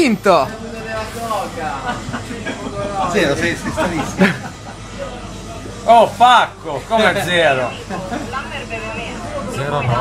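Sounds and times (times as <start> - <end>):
indistinct chatter of voices: 0.0 - 10.0.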